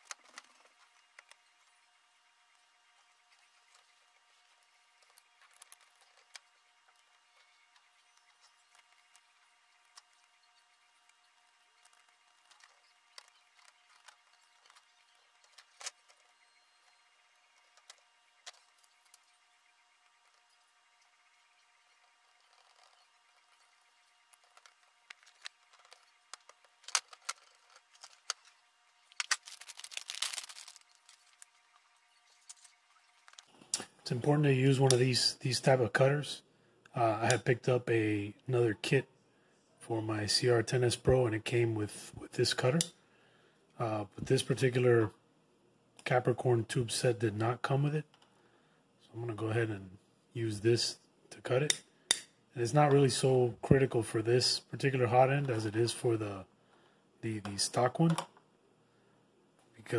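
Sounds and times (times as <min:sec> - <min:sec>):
rustling of plastic and wiring: 0:00.0 - 0:34.0
plastic parts clicking: 0:24.3 - 0:31.5.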